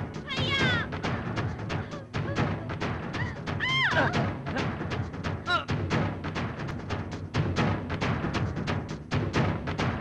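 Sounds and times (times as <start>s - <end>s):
dramatic film score: 0.0s - 10.0s
drum hits: 0.0s - 10.0s.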